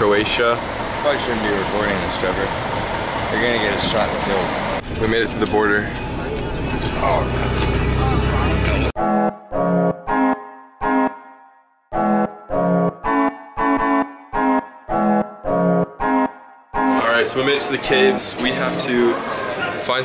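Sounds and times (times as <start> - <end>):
bus engine and road rumble: 0.0 - 9.0, 16.9 - 20.0.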